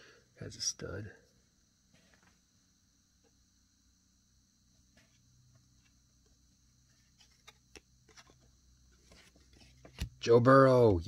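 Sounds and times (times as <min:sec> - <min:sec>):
cards being shuffled: 0:06.9 - 0:10.2.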